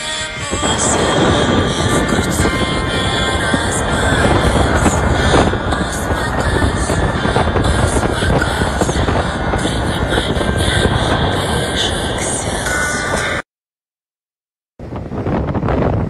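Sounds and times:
car road noise: 0.0s - 13.4s
music playing: 0.0s - 13.4s
wind rushing: 0.0s - 13.4s, 14.8s - 16.0s.

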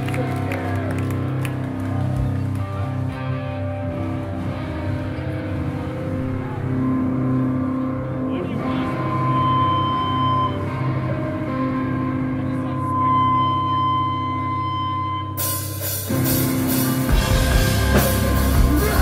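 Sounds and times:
distorted electric guitars droning: 0.0s - 19.0s
high feedback whine: 5.0s - 19.0s.

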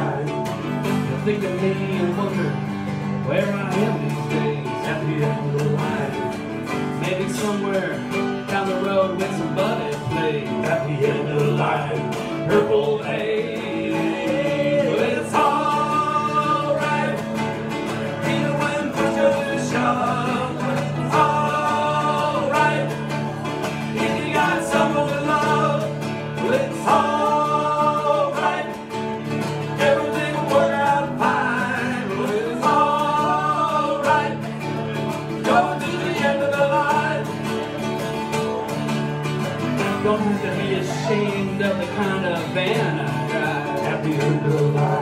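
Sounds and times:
acoustic guitars strumming: 0.0s - 45.0s
bending lead melody: 9.8s - 41.4s
voices singing long note: 12.6s - 37.3s.

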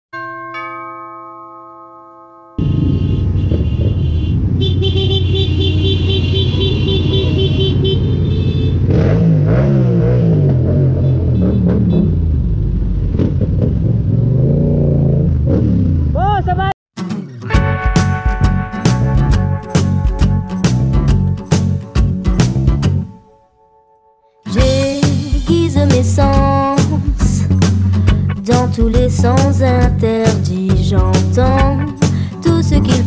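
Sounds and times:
two-note chime: 0.2s - 2.9s
motorcycle engine revving: 2.6s - 16.2s
road and wind noise: 2.6s - 16.7s.

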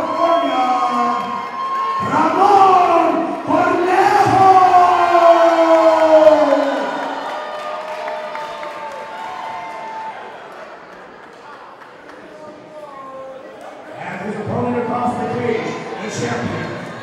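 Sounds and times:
crowd cheering: 0.0s - 17.0s
announcer shouting into microphone: 14.1s - 17.0s.

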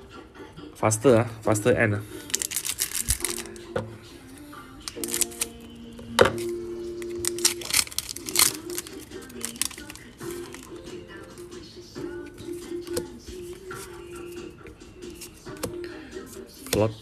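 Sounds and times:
background music with held notes: 0.0s - 17.0s
foil pack crinkling: 2.2s - 3.6s, 4.8s - 5.5s, 7.2s - 10.8s.

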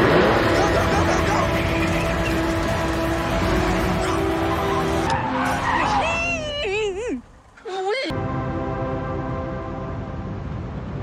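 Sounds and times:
horror film score chord: 0.0s - 5.6s, 8.1s - 11.0s.

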